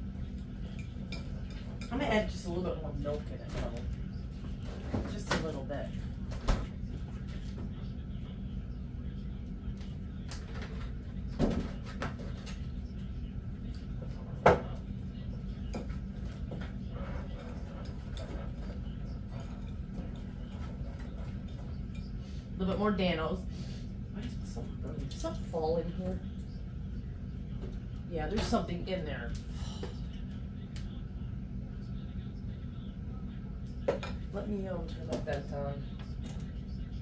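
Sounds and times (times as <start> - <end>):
steady low hum: 0.0 - 37.0.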